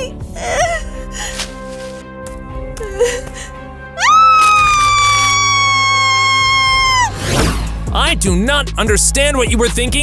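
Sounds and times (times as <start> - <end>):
background music: 0.0 - 10.0
woman screaming: 4.0 - 7.2.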